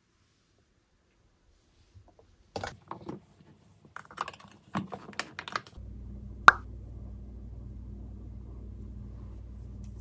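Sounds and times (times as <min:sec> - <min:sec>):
low steady hum: 0:05.8 - 0:10.0.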